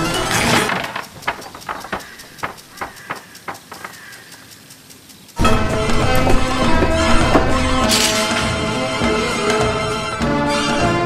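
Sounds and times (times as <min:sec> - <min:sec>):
running footsteps on hard path: 0:00.0 - 0:10.4
faint bird chirping: 0:00.8 - 0:06.1.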